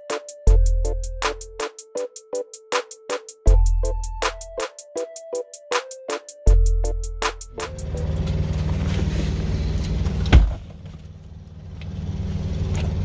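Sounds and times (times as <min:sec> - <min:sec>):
electronic beat music: 0:00.0 - 0:08.2
car engine idling: 0:07.6 - 0:13.0
loud thump: 0:10.3 - 0:10.7.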